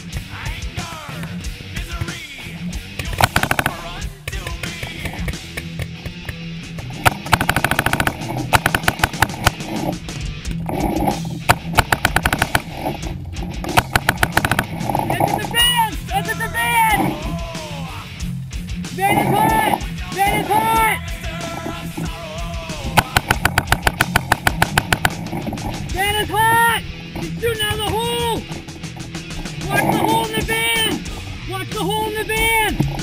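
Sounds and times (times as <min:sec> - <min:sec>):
loud rock music: 0:00.0 - 0:33.0
paintball marker rapid fire: 0:03.0 - 0:10.0, 0:10.7 - 0:15.3, 0:22.8 - 0:25.6.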